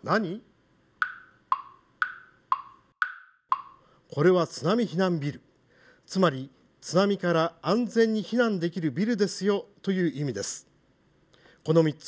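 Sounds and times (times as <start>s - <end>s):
wood-block tick-tock: 1.0s - 3.9s.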